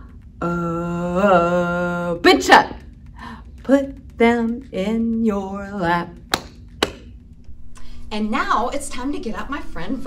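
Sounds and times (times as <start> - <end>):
sharp hand slaps: 6.3 - 7.2.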